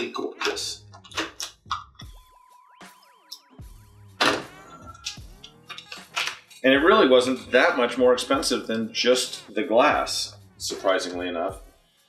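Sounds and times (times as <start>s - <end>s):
steady high electronic tone with warble: 2.3s - 5.1s.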